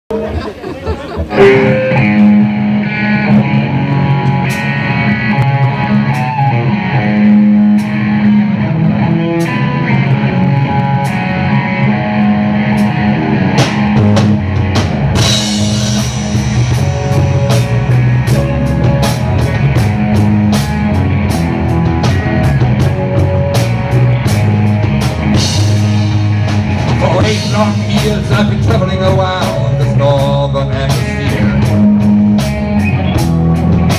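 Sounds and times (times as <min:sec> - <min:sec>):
bass guitar: 0:00.1 - 0:33.9
electric guitars: 0:00.1 - 0:33.9
drum kit with cymbals: 0:12.7 - 0:33.9.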